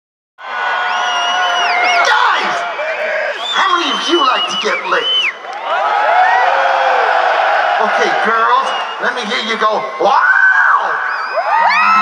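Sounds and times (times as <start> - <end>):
crowd cheering and whooping: 0.4 - 12.0.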